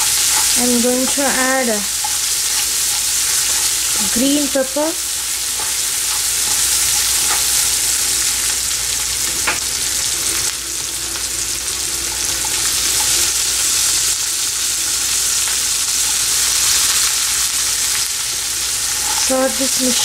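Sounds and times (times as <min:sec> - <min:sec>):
onion sizzling in hot oil: 0:00.0 - 0:20.0.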